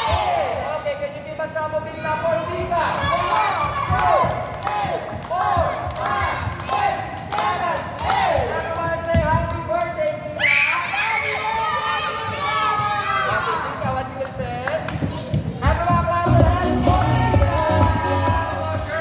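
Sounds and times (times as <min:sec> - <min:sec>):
children shouting and cheering: 0:10.4 - 0:13.8.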